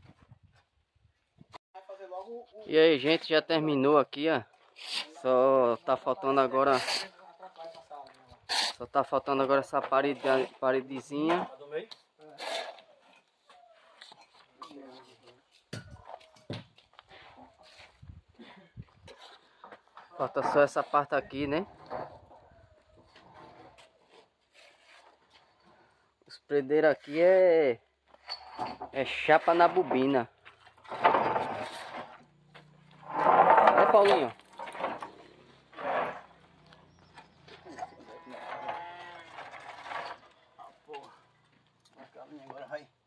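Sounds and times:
board scraping on brick: 0:30.7 - 0:40.4.

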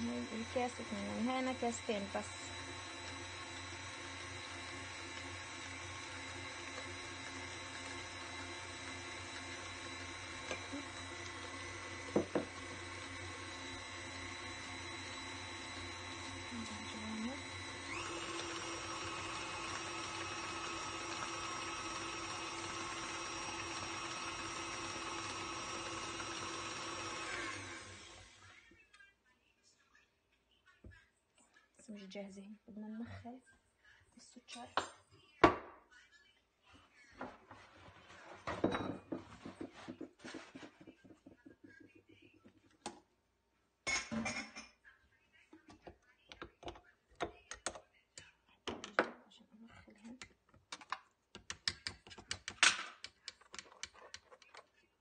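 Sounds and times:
stand mixer running: 0:00.0 - 0:28.5.

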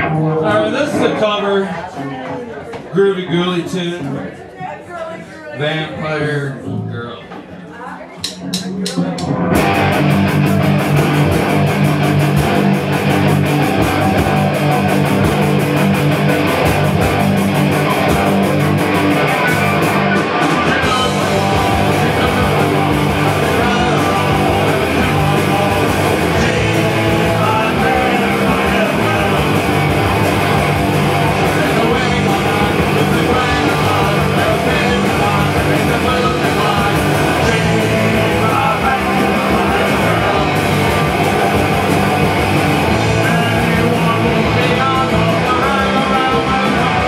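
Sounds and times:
punk rock band playing: 0:00.0 - 0:01.6, 0:08.3 - 0:47.0.

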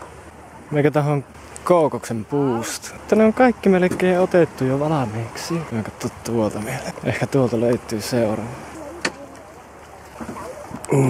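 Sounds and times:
faint voices: 0:04.6 - 0:11.0.

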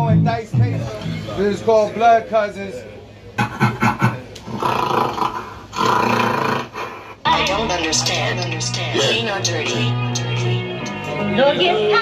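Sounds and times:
gorilla roars: 0:04.4 - 0:06.9.

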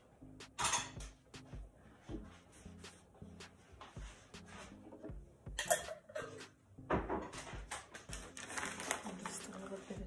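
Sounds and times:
metal spoon clicking on glass jars: 0:05.6 - 0:06.4.

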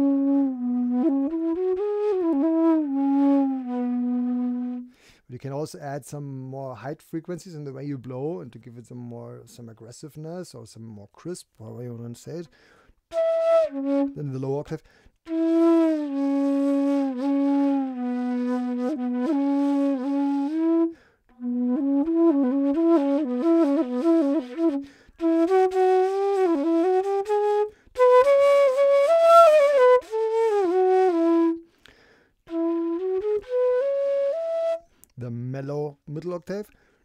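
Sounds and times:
bamboo flute solo: 0:00.0 - 0:04.9, 0:13.1 - 0:14.2, 0:15.3 - 0:31.7, 0:32.4 - 0:34.9
breaths between phrases: 0:04.9 - 0:05.4, 0:12.4 - 0:13.0, 0:14.7 - 0:15.2, 0:31.7 - 0:32.4, 0:36.6 - 0:37.0.

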